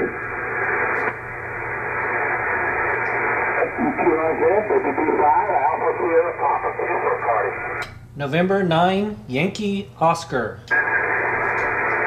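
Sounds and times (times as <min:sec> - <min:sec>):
muffled radio static: 0:00.0 - 0:07.8, 0:10.7 - 0:12.0
garbled radio voice: 0:03.5 - 0:07.8.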